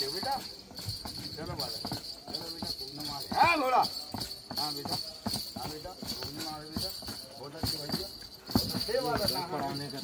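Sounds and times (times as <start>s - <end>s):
horse hooves on stone: 0.0s - 10.0s
people talking quietly: 0.0s - 10.0s.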